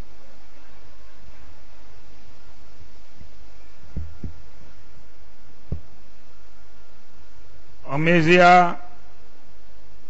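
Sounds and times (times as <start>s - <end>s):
low hum from speakers: 0.0s - 10.0s
microphone handling thuds: 3.9s - 4.5s, 5.6s - 6.0s.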